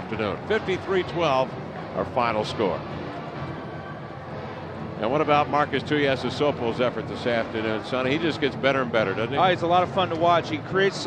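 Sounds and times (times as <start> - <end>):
faint music: 0.0 - 11.0
stadium crowd: 0.0 - 11.0.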